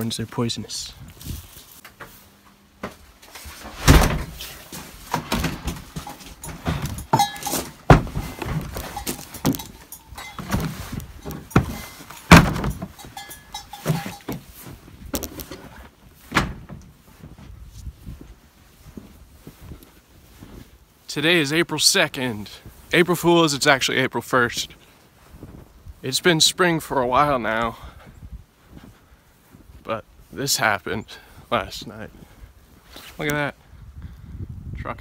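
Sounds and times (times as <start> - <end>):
footsteps crunching in snow: 0.1 - 5.1, 5.7 - 23.7, 24.4 - 33.5
heavy thuds: 2.8 - 18.2.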